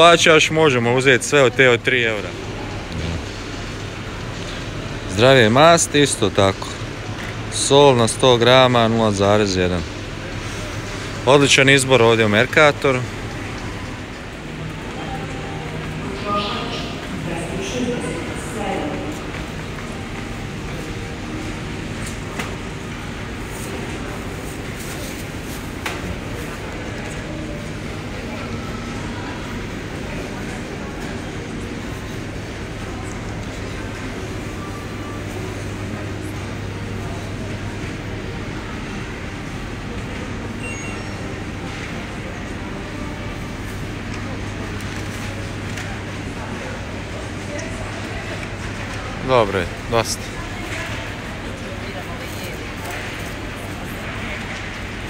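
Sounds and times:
indistinct voices of shoppers: 0:00.0 - 0:55.0.

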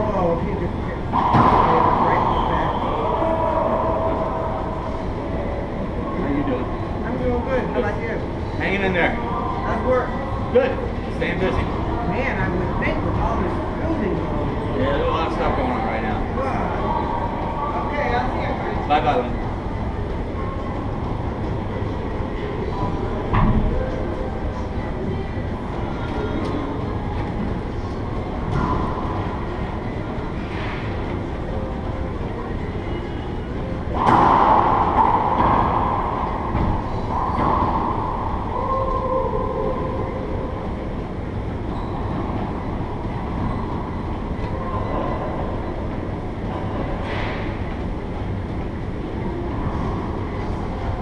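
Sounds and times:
low rumble of indoor court: 0:00.0 - 0:51.0
echoing racquetball hits: 0:01.1 - 0:04.3, 0:33.9 - 0:40.4.

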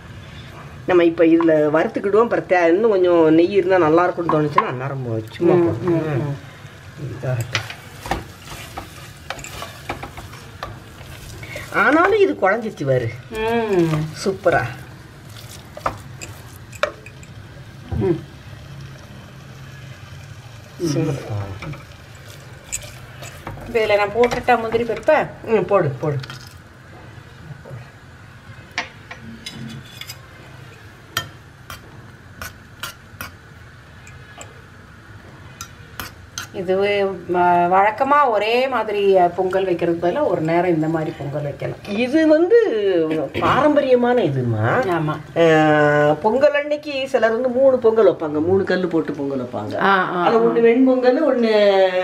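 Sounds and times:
nuts frying in oil: 0:00.0 - 0:29.2, 0:29.8 - 0:43.0
faint sizzle of ghee: 0:00.0 - 0:52.0
spatula scraping pot: 0:07.5 - 0:12.7, 0:20.9 - 0:25.1.

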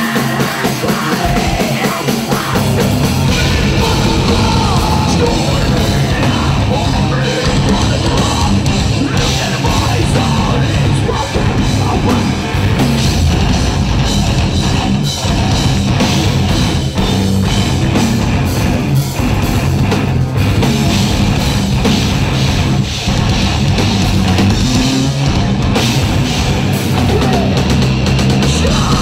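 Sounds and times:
bass guitar: 0:00.0 - 0:29.0
distorted electric guitars: 0:00.0 - 0:29.0
pounding drum kit: 0:00.0 - 0:29.0.

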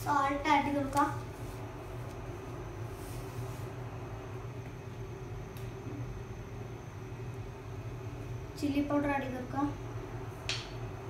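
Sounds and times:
kitchen room hum: 0:00.0 - 0:11.0.

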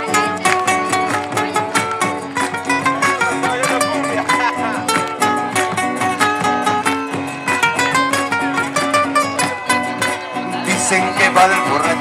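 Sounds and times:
acoustic guitars playing folk: 0:00.0 - 0:12.0.

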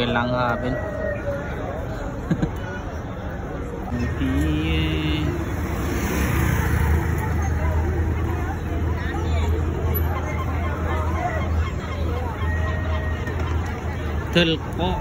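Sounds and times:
crowd babble: 0:00.0 - 0:15.0
low hum of traffic: 0:00.0 - 0:15.0.

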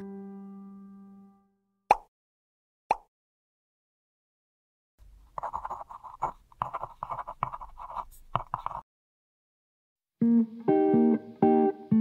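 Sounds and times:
pen scratching on paper: 0:05.4 - 0:08.8.

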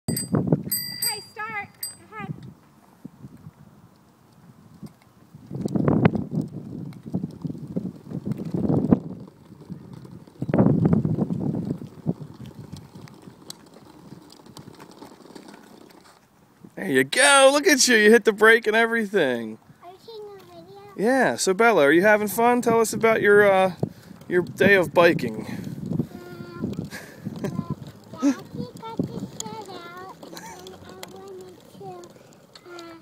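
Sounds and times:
bicycle bell ringing: 0:00.1 - 0:02.2.

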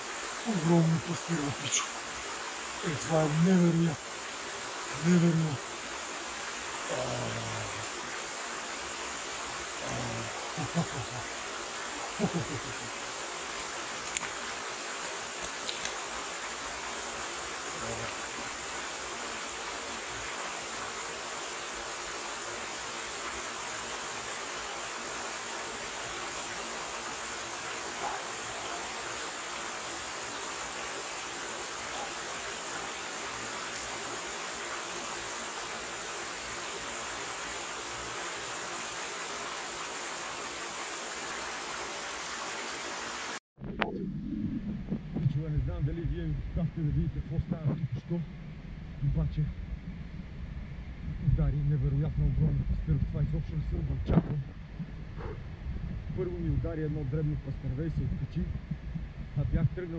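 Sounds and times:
stream running over stones: 0:00.0 - 0:43.4.

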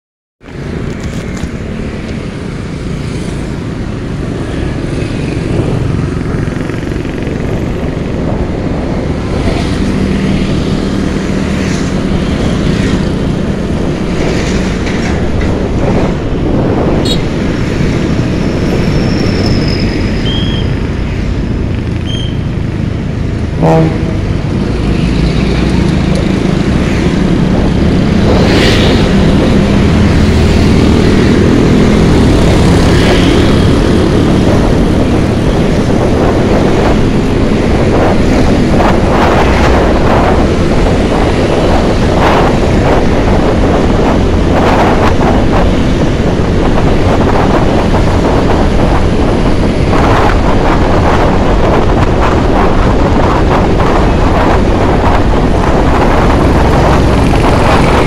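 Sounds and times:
passing traffic: 0:00.4 - 0:58.0
wind on microphone: 0:00.4 - 0:58.0.

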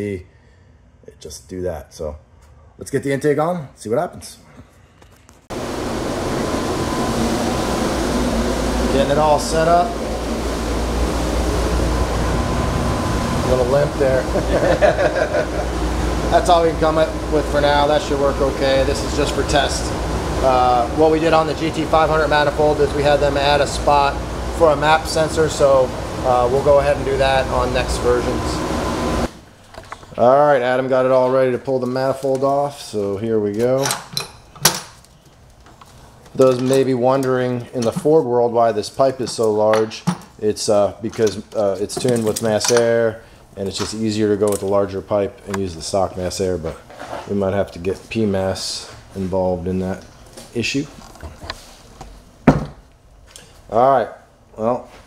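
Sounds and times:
ventilation fan rushing: 0:05.3 - 0:55.0
faint hum: 0:05.5 - 0:31.0.

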